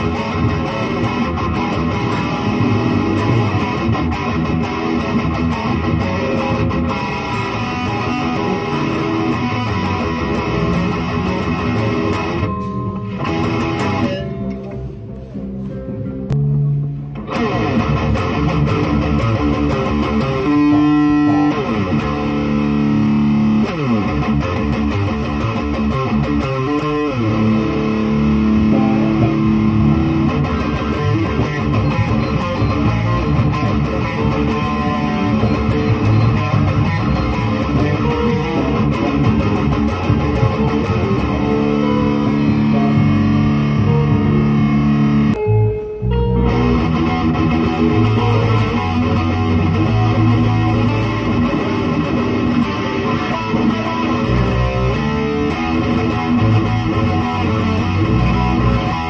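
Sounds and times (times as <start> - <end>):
electric guitar riffs: 0.0 - 59.0.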